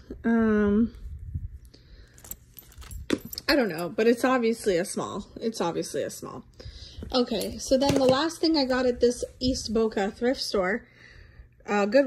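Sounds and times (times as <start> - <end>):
metal belt buckle clinking: 2.0 - 4.2, 7.3 - 7.8.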